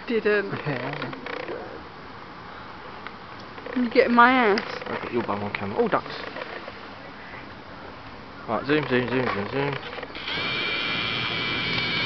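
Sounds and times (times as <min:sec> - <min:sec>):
zoom lens motor whining: 0:09.8 - 0:12.0.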